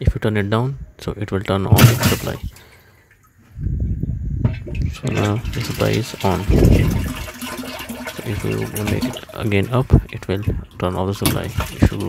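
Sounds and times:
water gushing into tank: 0:04.6 - 0:12.0.

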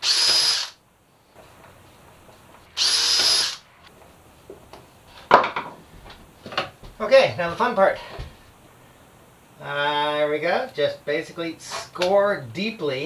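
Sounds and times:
cordless drill whining: 0:00.0 - 0:00.8, 0:02.7 - 0:03.7.

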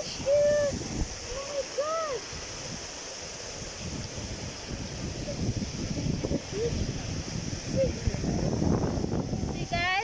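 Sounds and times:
steady high hiss: 0:00.0 - 0:10.0
wind buffeting microphone: 0:00.0 - 0:10.0.

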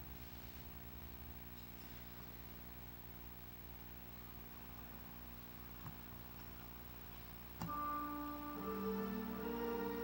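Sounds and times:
instrument playing held notes: 0:07.6 - 0:10.0.

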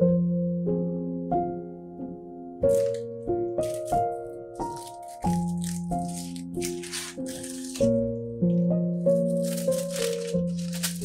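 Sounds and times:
slow instrumental music: 0:00.0 - 0:11.0
foil wrapper crinkling: 0:02.6 - 0:03.0, 0:03.6 - 0:08.1, 0:09.1 - 0:11.0.

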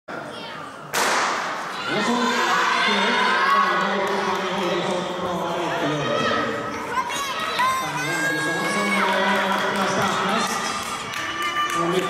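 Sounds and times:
spectators shouting and cheering: 0:01.5 - 0:12.0.

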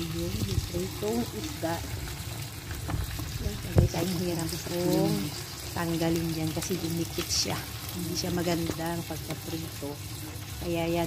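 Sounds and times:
fish frying in oil: 0:00.0 - 0:11.0.

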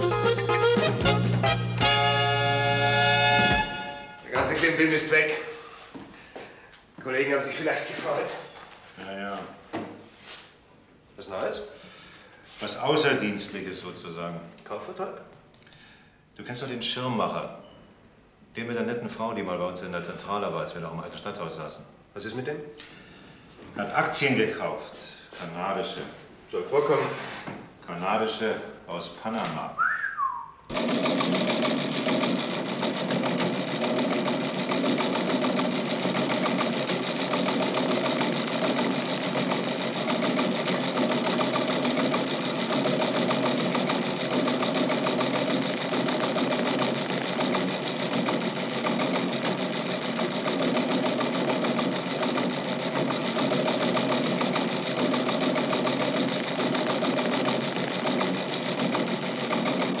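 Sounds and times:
teleprinter printing rattle: 0:30.7 - 1:00.0.

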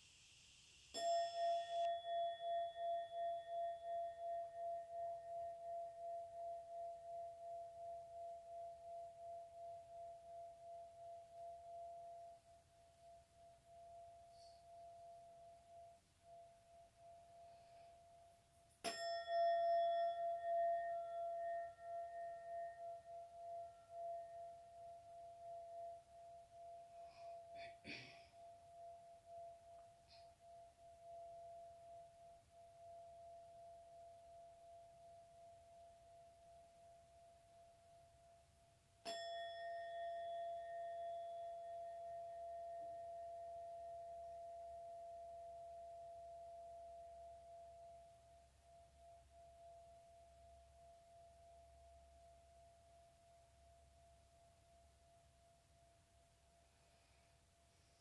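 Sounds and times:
singing bowl ringing: 0:00.7 - 0:37.8, 0:39.0 - 0:53.5.

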